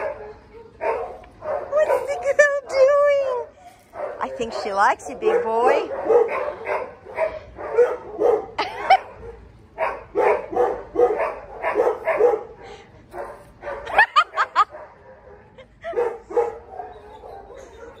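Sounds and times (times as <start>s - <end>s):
dogs barking: 0.0s - 2.6s, 3.9s - 18.0s
high rising dog yips: 16.8s - 18.0s.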